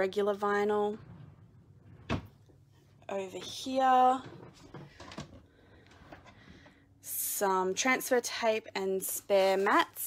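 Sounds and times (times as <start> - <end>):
drawer sliding open: 0.9 - 2.5.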